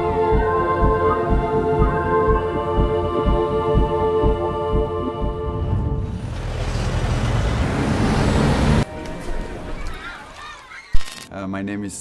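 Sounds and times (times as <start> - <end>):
rumble of city traffic: 5.5 - 8.9.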